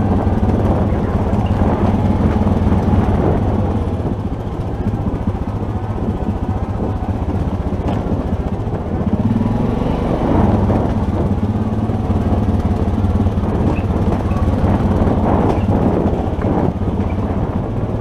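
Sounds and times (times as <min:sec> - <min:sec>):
atv engine running: 0:00.0 - 0:18.0.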